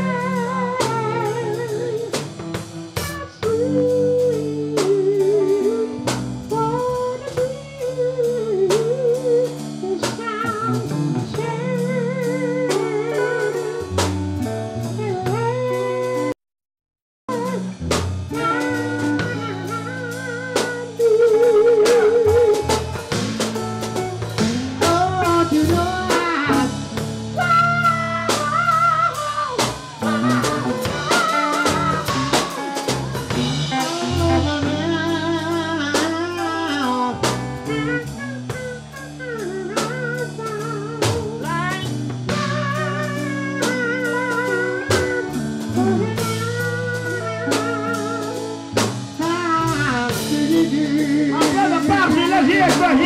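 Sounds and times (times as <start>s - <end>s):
drum kit beat: 0.0s - 16.4s, 17.3s - 53.0s
sustained bass notes: 0.0s - 16.4s, 17.3s - 53.0s
lead melody with vibrato: 18.4s - 53.0s.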